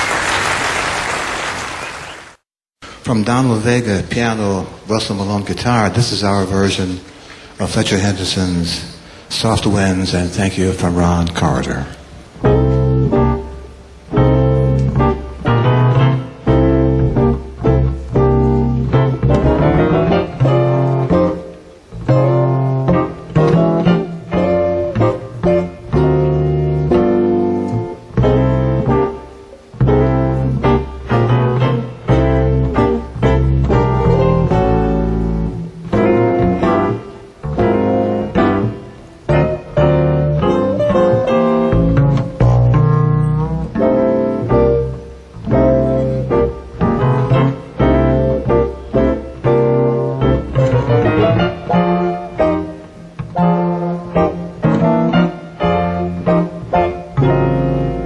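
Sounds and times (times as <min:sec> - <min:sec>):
piano: 0:00.0 - 0:58.0
jazz trio playing: 0:10.7 - 0:58.0
walking bass line: 0:12.4 - 0:58.0.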